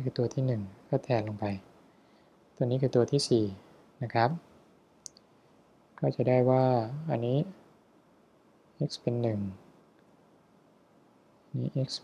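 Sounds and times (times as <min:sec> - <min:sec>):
man's voice: 0:00.0 - 0:01.6, 0:02.6 - 0:04.4, 0:06.0 - 0:07.6, 0:11.6 - 0:12.0.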